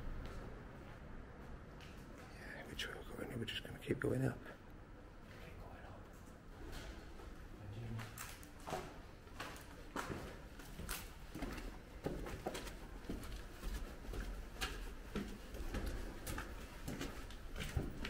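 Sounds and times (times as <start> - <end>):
footsteps on gritty concrete stairs: 8.0 - 18.0.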